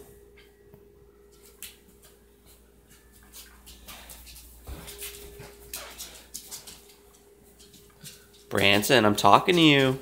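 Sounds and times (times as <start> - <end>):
scuffling and rustling: 1.3 - 8.5.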